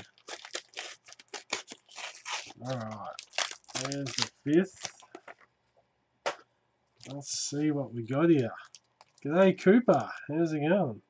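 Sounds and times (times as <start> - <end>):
foil wrapper tearing: 0.0 - 5.2.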